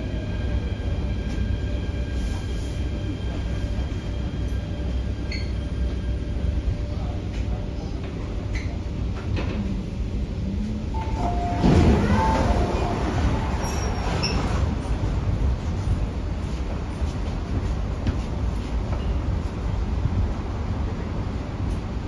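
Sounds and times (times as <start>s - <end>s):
train low rumble: 0.0s - 22.0s
train doors sliding open: 10.9s - 19.3s.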